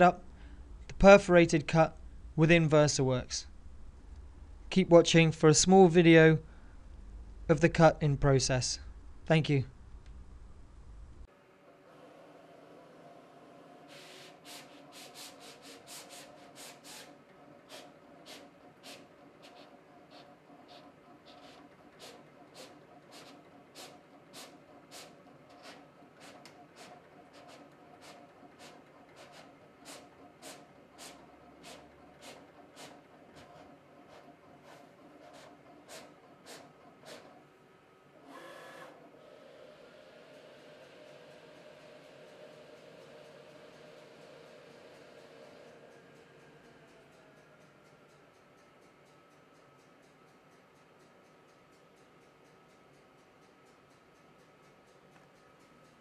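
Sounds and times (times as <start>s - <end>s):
faint steady hum: 0.0s - 11.3s
faint motor hum: 0.0s - 56.0s
cutting plotter carriage whirring: 11.4s - 37.6s, 38.2s - 49.6s.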